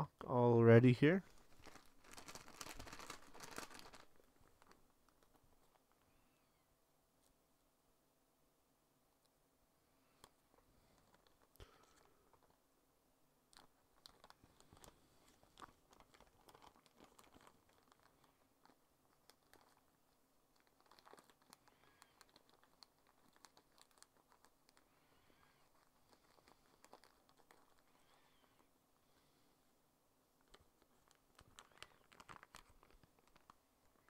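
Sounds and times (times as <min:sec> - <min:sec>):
small objects clicking and rustling: 0:01.2 - 0:06.0, 0:13.5 - 0:24.9, 0:25.5 - 0:28.6, 0:30.4 - 0:34.0.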